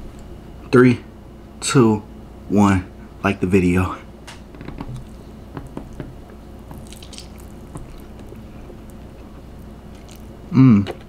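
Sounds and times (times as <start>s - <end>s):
quiet chewing: 4.8s - 11.0s
wet mouth clicks: 6.7s - 9.0s.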